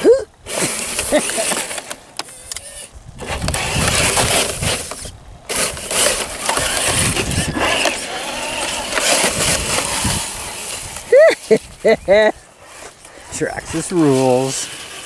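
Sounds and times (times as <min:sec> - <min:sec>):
electric motor whirring: 0:00.7 - 0:13.0
tyres churning through slushy snow: 0:05.5 - 0:15.0.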